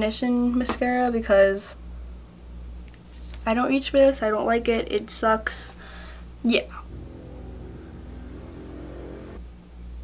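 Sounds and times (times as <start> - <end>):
low humming drone: 6.8 - 9.4.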